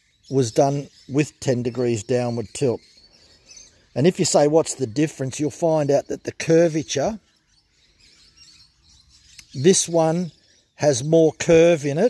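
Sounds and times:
faint background sounds: 0:00.2 - 0:07.4.

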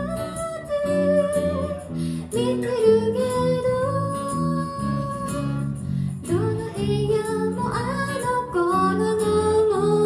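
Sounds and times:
second guitar: 0:00.0 - 0:10.0.

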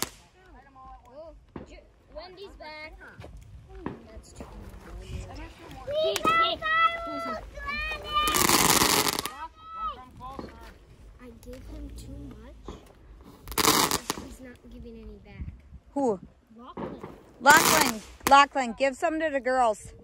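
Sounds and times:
firework rushing bursts: 0:00.0 - 0:00.4, 0:07.7 - 0:09.4, 0:12.6 - 0:14.5, 0:17.0 - 0:18.5
children's voices: 0:02.2 - 0:13.0, 0:13.6 - 0:15.4, 0:16.0 - 0:20.0.

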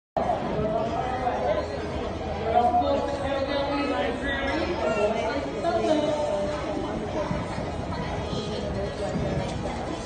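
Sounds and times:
chatter of people talking: 0:00.2 - 0:10.0.

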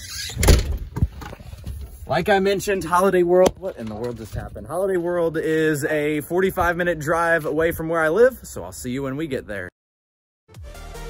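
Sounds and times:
door thump: 0:00.4 - 0:01.1.

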